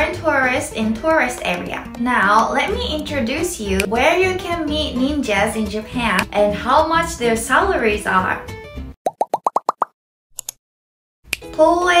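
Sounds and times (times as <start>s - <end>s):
bubbly bloops rising in pitch: 9.0s - 9.9s.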